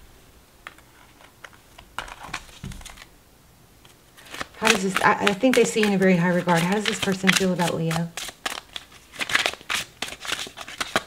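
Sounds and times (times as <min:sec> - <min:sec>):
cards clicking and tapping: 0:04.2 - 0:11.0.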